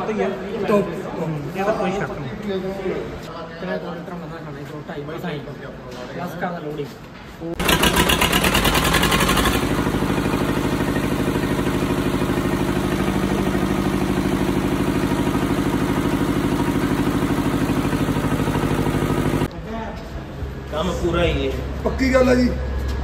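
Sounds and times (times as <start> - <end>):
diesel generator engine running: 7.6 - 19.5.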